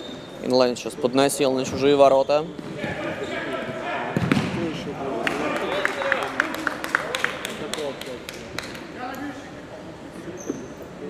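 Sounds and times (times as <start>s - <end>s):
ball kicked and bouncing: 4.2s - 4.6s
shoes squeaking on wooden court: 10.3s - 10.8s.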